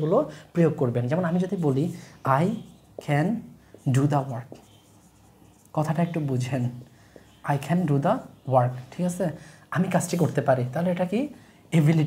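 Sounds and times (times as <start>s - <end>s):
man speaking: 0.0s - 4.7s, 5.7s - 12.0s
marker scratching on whiteboard: 1.1s - 9.2s, 9.8s - 11.1s.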